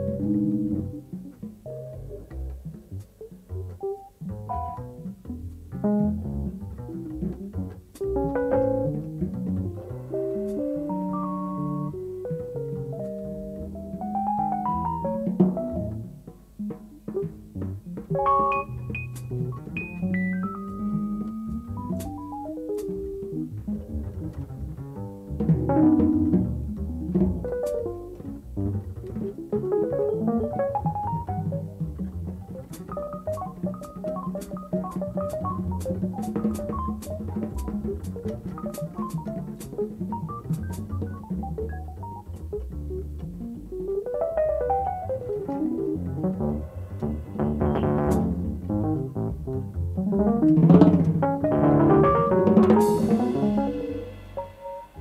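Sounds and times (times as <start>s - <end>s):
double bass line: 0.0s - 55.0s
electric piano runs and chords: 0.0s - 55.0s
light cymbal strokes: 52.8s - 55.0s.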